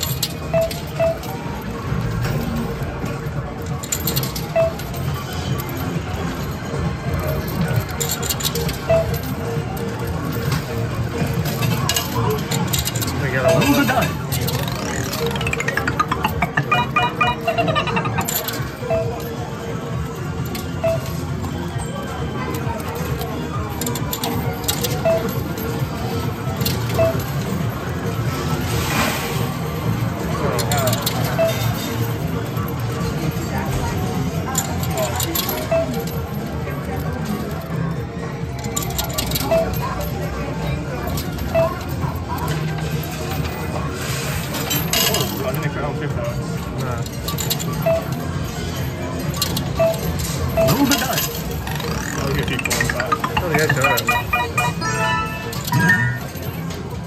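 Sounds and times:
coins clinking and rattling: 0.0s - 1.4s, 3.7s - 9.3s, 11.3s - 19.3s, 49.2s - 57.0s
arcade music: 13.3s - 19.1s, 50.6s - 56.7s.

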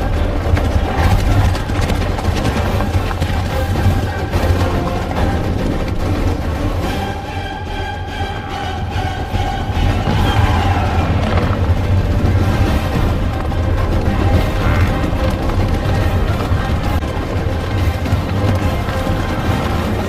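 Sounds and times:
film score music: 0.0s - 20.0s
herd stampeding rumble: 0.0s - 20.0s.

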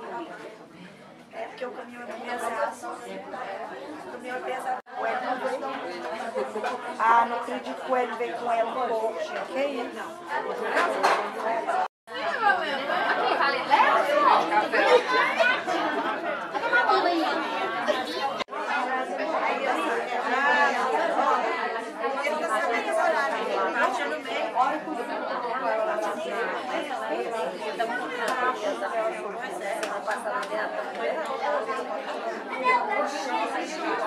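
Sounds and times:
crowd of people talking: 0.0s - 34.0s.

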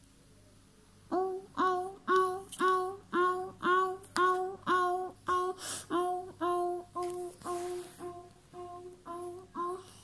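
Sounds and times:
child singing bell imitation: 1.1s - 9.9s.

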